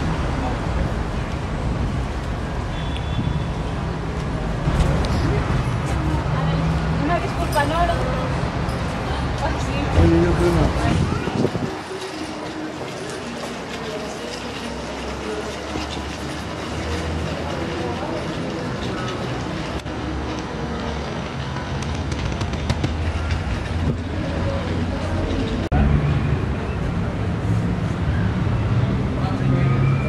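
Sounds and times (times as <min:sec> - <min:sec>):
low street rumble: 0:00.0 - 0:30.0
faint indistinct voices: 0:04.2 - 0:30.0.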